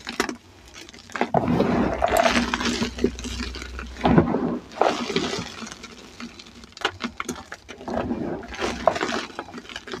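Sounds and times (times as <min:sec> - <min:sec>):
powdered chalk crunching: 0:00.0 - 0:10.0.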